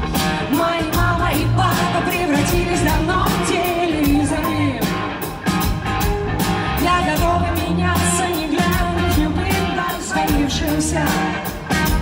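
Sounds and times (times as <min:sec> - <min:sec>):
live rock band playing: 0:00.0 - 0:12.0
woman singing: 0:00.2 - 0:05.4, 0:06.8 - 0:12.0.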